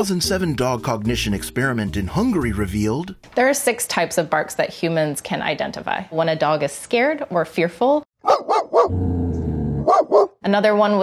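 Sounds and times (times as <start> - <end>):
dog barking: 8.2 - 9.0, 9.8 - 10.4.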